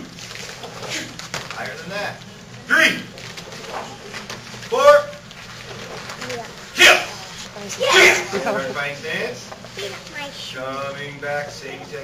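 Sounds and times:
low room sound in a hall: 0.0s - 12.0s
person shouting: 7.8s - 8.3s.

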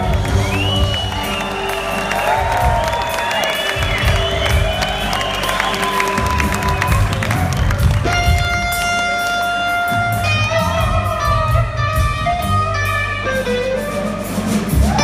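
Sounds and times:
crowd cheering: 0.0s - 12.1s, 14.7s - 15.0s
bass and drums: 0.0s - 15.0s.

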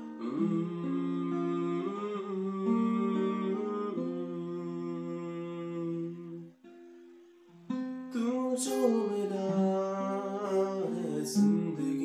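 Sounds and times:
man humming: 0.0s - 6.4s
acoustic guitar chords: 0.0s - 12.0s.

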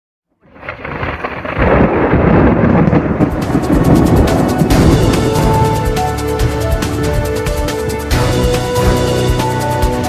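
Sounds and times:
heavy rain: 0.4s - 10.0s
thunder rumbling: 0.4s - 10.0s.

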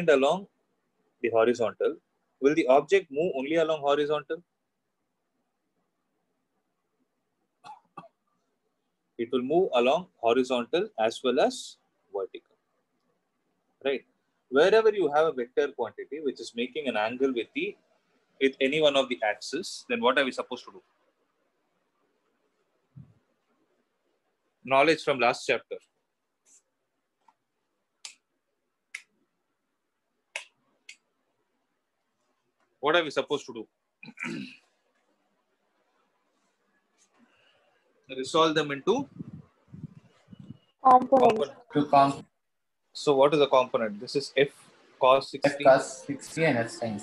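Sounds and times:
person coughing: 34.0s - 34.6s.

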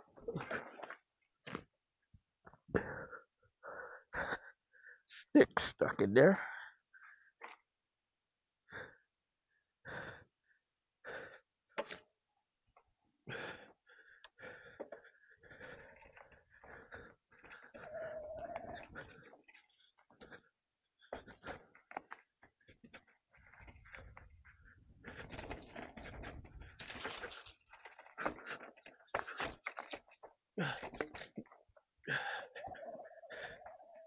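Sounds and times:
rider panting: 0.0s - 1.2s, 13.2s - 34.0s.

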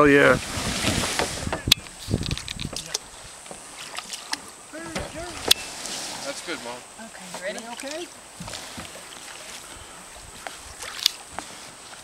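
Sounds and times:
plastic kayak clicks and knocks: 1.1s - 5.6s.

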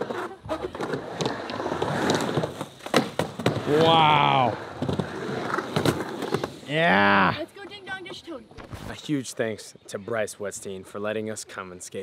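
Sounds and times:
skateboard wheels rolling: 0.0s - 8.9s.

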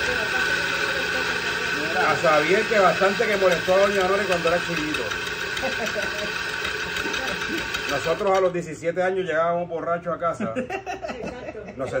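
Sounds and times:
motor humming: 0.0s - 8.5s.

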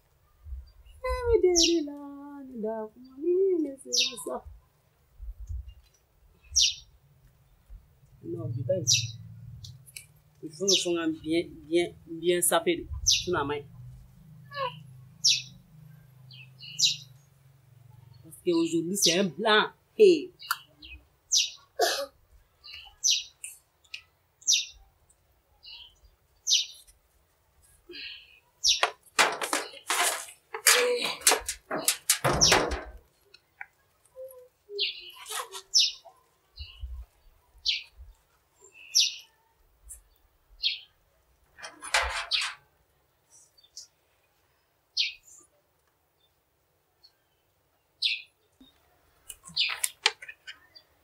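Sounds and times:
small birds chirping: 0.0s - 51.0s
scratchy noises: 29.2s - 33.0s, 35.1s - 35.8s.

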